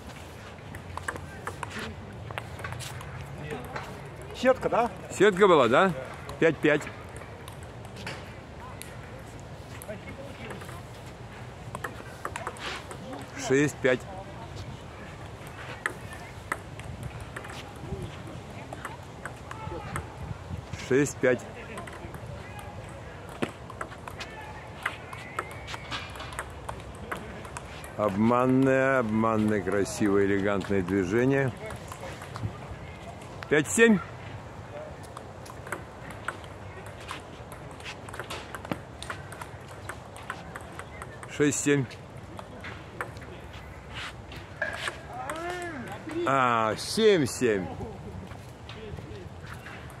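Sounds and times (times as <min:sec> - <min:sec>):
outdoor background noise: 0:00.0 - 0:50.0
table tennis ball tapping: 0:00.7 - 0:04.4, 0:11.7 - 0:13.3, 0:15.8 - 0:18.0, 0:18.7 - 0:20.1, 0:21.6 - 0:24.2, 0:24.8 - 0:30.1, 0:35.4 - 0:41.6.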